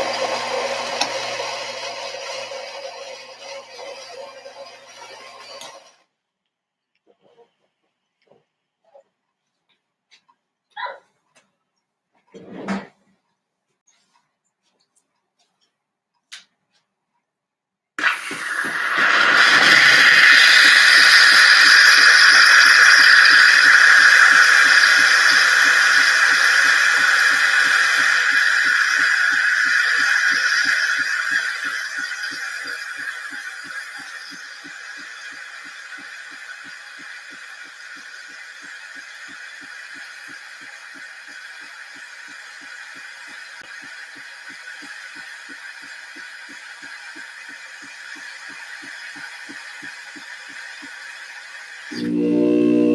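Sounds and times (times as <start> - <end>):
espresso machine steam hiss: 18.0 - 52.9
fast regular pulsing: 18.0 - 52.9.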